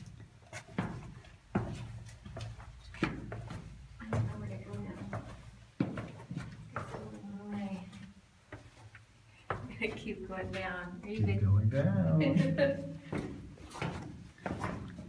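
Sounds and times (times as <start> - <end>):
footsteps on stone floor: 0.0 - 15.0
indistinct voices: 11.1 - 12.7.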